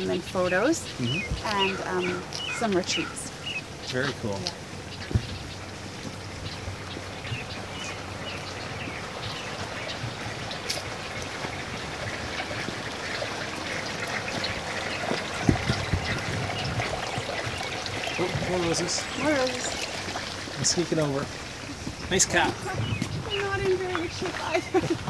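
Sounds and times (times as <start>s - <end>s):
water running and trickling: 0.0s - 25.0s.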